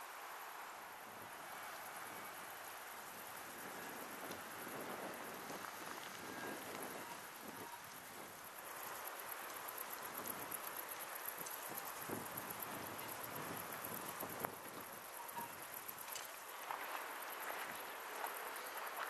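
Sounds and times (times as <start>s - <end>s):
faint outdoor hiss: 0.0s - 19.0s
light crackling and rustling: 3.3s - 19.0s.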